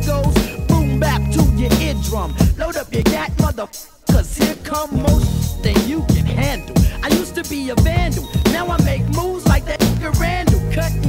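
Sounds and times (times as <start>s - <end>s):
deep bass line: 0.0s - 3.2s, 4.8s - 11.0s
hip hop drum beat: 0.0s - 11.0s
person rapping: 0.0s - 11.0s.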